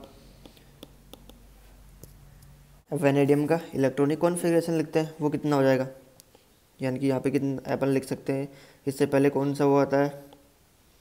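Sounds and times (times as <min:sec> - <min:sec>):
background hiss and hum: 0:00.0 - 0:11.0
stylus tapping on glass screen: 0:00.4 - 0:01.4.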